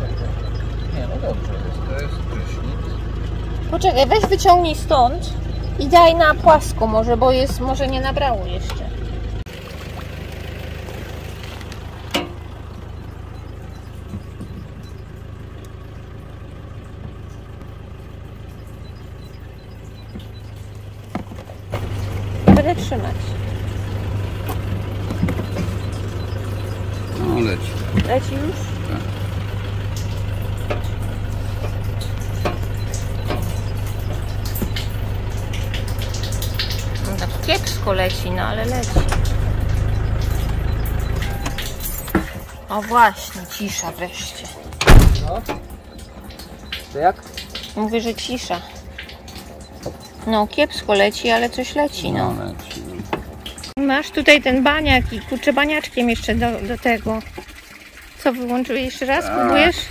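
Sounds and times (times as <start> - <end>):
electric water pump humming: 0.0 - 59.9.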